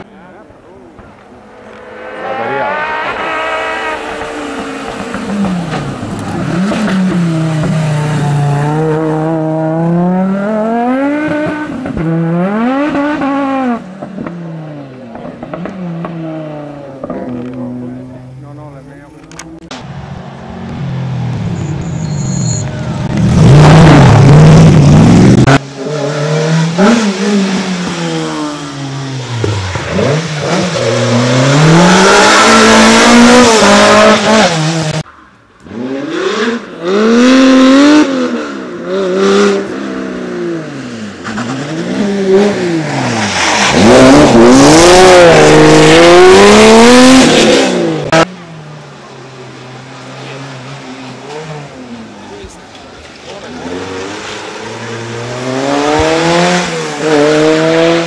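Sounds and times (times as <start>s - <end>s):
rally cars revving past: 1.0s - 18.4s, 22.6s - 48.6s, 53.0s - 58.0s.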